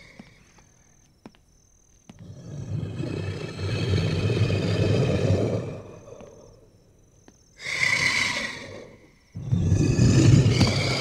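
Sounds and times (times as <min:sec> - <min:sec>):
deep rumbling creature roar: 0:02.3 - 0:06.1, 0:07.6 - 0:11.0.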